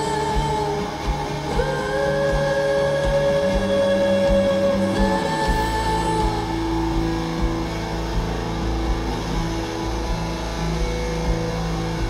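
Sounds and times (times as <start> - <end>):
electric guitar notes ringing: 0.0 - 12.0
steady low bass: 0.0 - 12.0.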